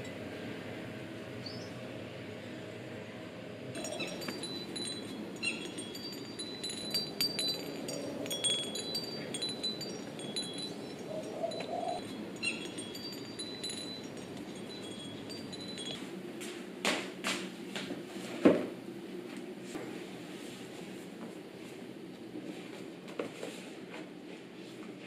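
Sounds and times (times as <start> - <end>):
faint steady background noise: 0.0 - 25.0
wind chimes tinkling: 3.8 - 16.2.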